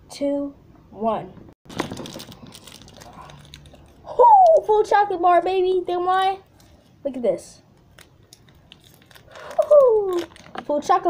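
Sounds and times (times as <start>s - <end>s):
foil wrapper crinkling: 1.7s - 4.1s, 7.8s - 11.0s.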